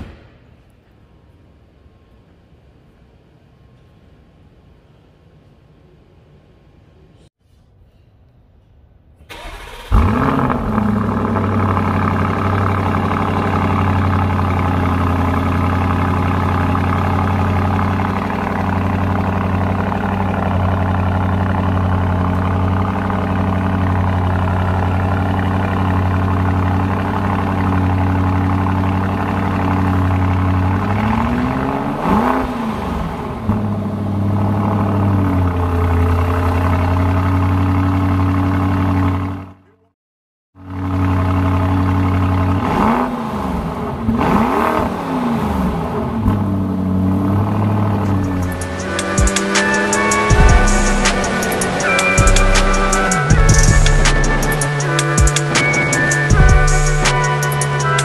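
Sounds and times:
car engine starting and idling: 0:09.2 - 0:39.8, 0:40.6 - 0:58.0
engine throttle blip: 0:48.0 - 0:58.0.

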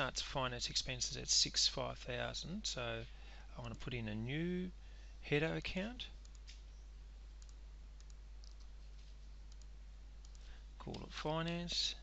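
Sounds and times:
steady low hum: 0:00.0 - 0:12.0
computer mouse clicks: 0:06.2 - 0:06.8, 0:07.4 - 0:08.7, 0:09.5 - 0:11.6.

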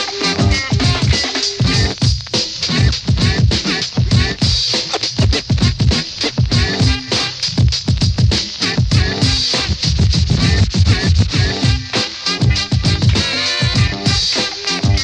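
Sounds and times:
record scratching on a turntable: 0:00.0 - 0:15.0
steady drum beat: 0:00.0 - 0:15.0.

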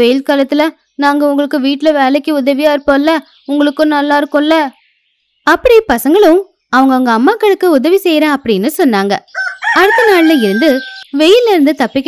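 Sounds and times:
drawn-out crowing call: 0:09.3 - 0:11.4.

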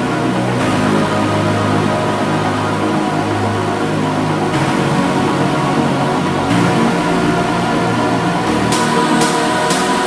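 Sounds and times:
bass: 0:00.0 - 0:10.0
synth chords: 0:00.0 - 0:10.0.

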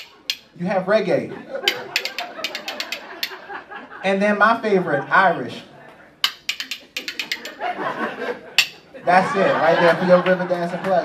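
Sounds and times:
spoons clicking in rhythm: 0:00.0 - 0:00.6, 0:01.7 - 0:03.5, 0:06.2 - 0:07.7, 0:08.6 - 0:08.8.

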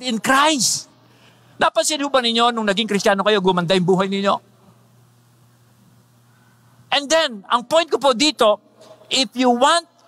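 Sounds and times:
man talking: 0:00.0 - 0:01.0, 0:01.6 - 0:04.5, 0:06.9 - 0:10.0
steady low hum: 0:00.0 - 0:10.0.

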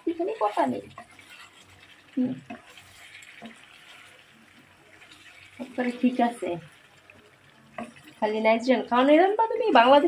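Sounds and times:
curry simmering in a pan: 0:00.0 - 0:10.0.

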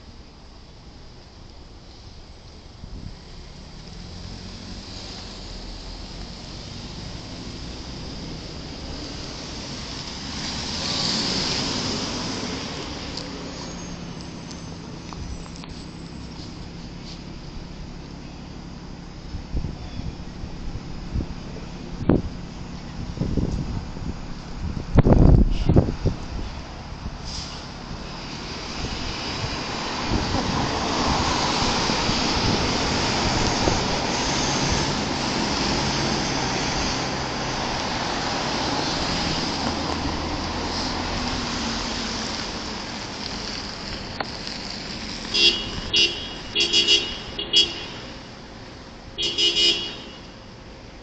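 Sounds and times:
bus and cars driving past: 0:00.0 - 0:51.0
vehicle horn short toots: 0:45.3 - 0:48.0, 0:49.2 - 0:50.3.

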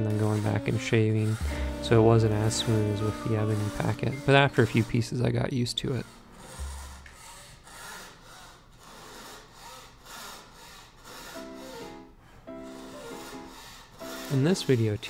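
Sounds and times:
soft background music: 0:00.0 - 0:07.4, 0:11.4 - 0:15.0
fretsaw cutting veneer: 0:00.0 - 0:15.0.

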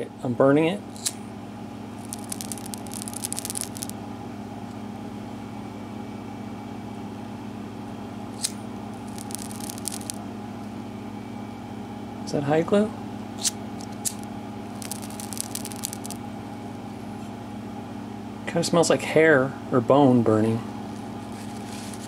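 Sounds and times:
low room hum: 0:00.0 - 0:22.0
glue crackling in flame: 0:02.0 - 0:04.0, 0:08.4 - 0:10.2, 0:14.0 - 0:16.2.

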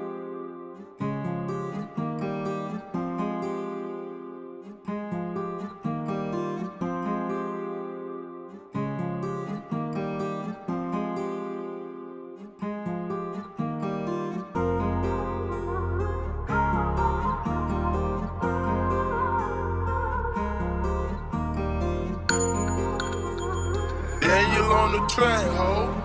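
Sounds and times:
plucked guitar loop: 0:00.0 - 0:26.0.

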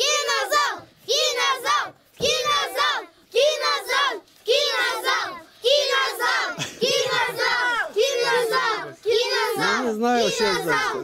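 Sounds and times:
children chanting in unison: 0:00.0 - 0:11.0.

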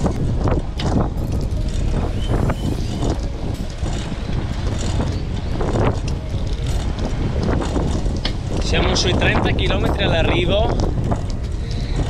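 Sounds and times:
bicycle rattles and clicks: 0:00.0 - 0:12.0
wind rushing over microphone: 0:00.0 - 0:12.0.

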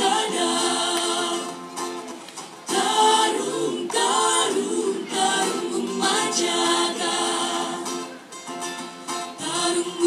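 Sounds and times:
vocal group singing in harmony: 0:00.0 - 0:08.3, 0:09.2 - 0:10.0.

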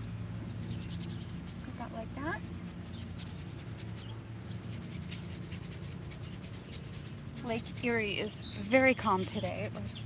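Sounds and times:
brush scrubbing paint on canvas: 0:00.6 - 0:10.0.

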